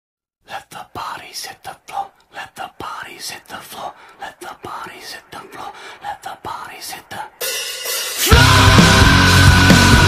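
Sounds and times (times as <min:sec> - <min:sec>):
person whispering: 0:00.4 - 0:07.4.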